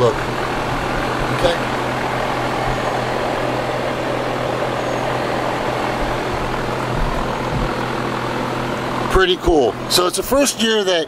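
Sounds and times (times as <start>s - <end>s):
air conditioner fan running: 0.0s - 11.0s.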